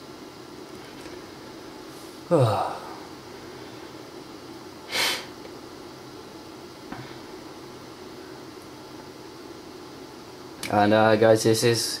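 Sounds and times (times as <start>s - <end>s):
room hum and hiss: 0.0s - 12.0s.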